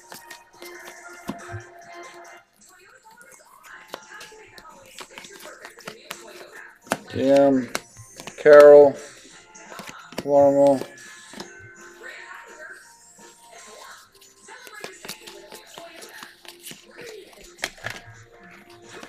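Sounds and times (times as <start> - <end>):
trading cards flipped by hand: 0.0 - 1.6, 3.2 - 11.6, 13.7 - 19.0
faint background music: 0.0 - 19.0.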